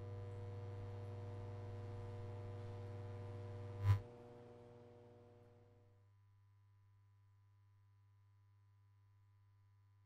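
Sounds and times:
low electrical hum: 0:00.0 - 0:05.8.

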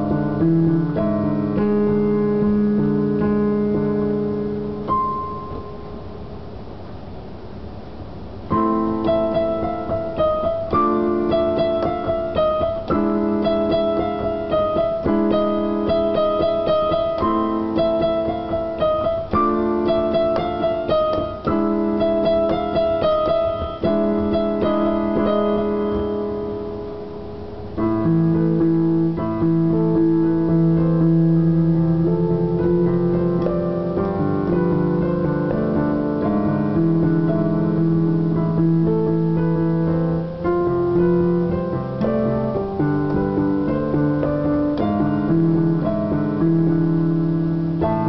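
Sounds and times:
electronic keyboard chords: 0:00.0 - 0:48.0.

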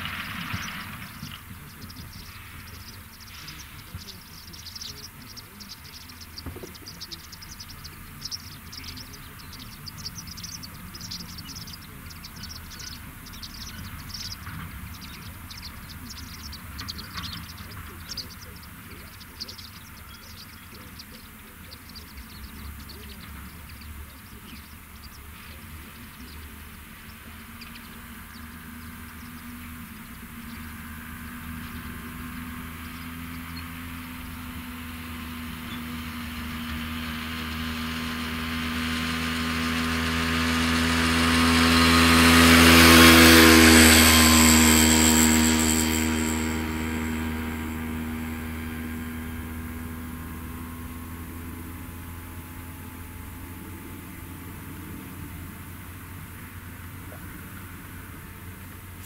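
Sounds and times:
diesel engine drone: 0:00.0 - 0:59.0
vehicle passing by: 0:00.0 - 0:59.0.

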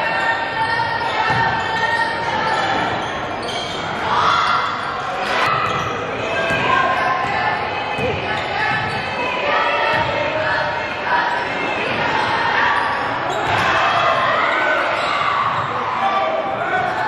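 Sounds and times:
voices of players and spectators: 0:00.0 - 0:17.0.

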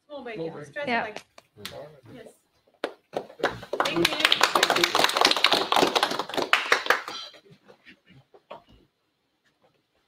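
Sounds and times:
group applauding: 0:02.8 - 0:07.4.

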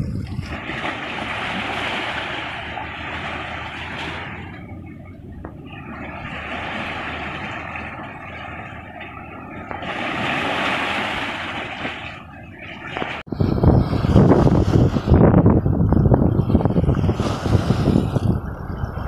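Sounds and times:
sea waves washing over rocks: 0:00.0 - 0:15.7, 0:16.4 - 0:19.0.

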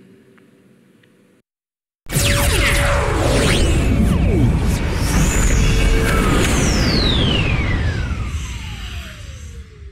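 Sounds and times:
low rumble: 0:03.0 - 0:09.9.

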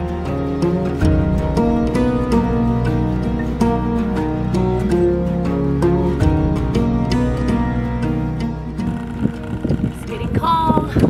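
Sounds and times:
wind rumbling on microphone: 0:06.2 - 0:11.0
woman's voice: 0:09.9 - 0:11.0.

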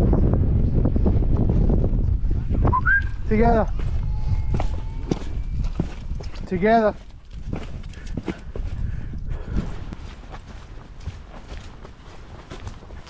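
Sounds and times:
low rumble: 0:00.0 - 0:06.4
footsteps on outdoor path: 0:03.7 - 0:13.0.

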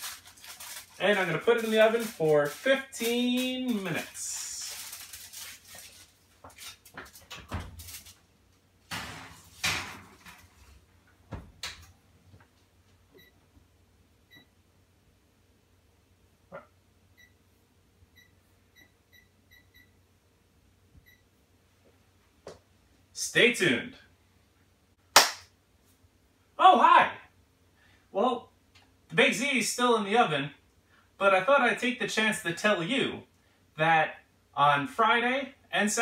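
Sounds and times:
foil rustling: 0:00.0 - 0:08.2.

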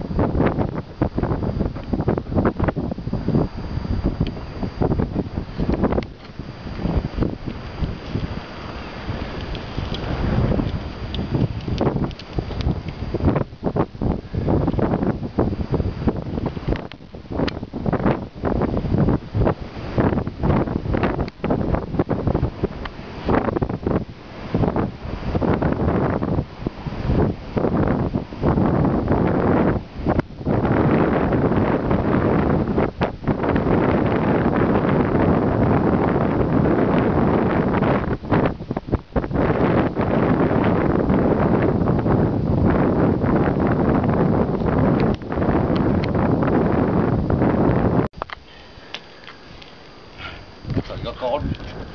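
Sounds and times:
strong wind buffeting microphone: 0:00.0 - 0:51.9.

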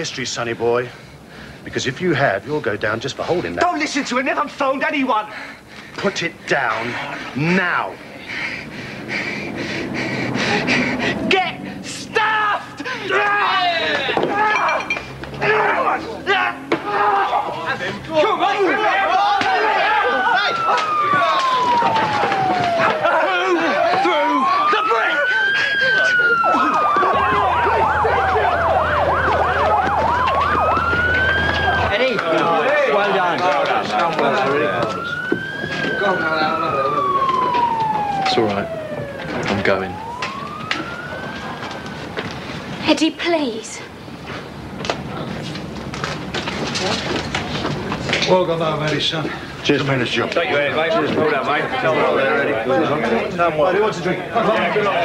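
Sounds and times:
rapid heavy breathing: 0:00.8 - 0:01.7, 0:05.3 - 0:11.9, 0:25.3 - 0:27.0
low background murmur: 0:05.2 - 0:55.0
raised voices: 0:06.3 - 0:40.0
police siren wailing: 0:18.5 - 0:42.7
siren fast yelp: 0:19.0 - 0:32.2, 0:34.5 - 0:42.1.

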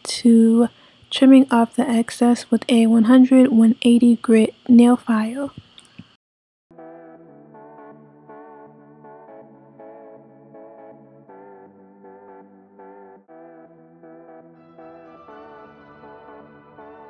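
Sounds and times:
soft ambient instrumental music: 0:06.8 - 0:17.0.

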